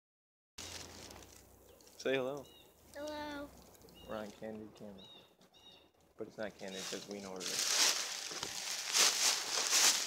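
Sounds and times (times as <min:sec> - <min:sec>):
footsteps crunching dry leaves: 0:00.6 - 0:01.5, 0:06.6 - 0:10.0.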